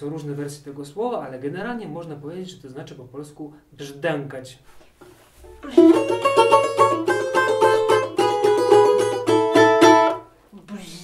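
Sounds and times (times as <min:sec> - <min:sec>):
balalaika tremolo melody: 0:05.5 - 0:10.3.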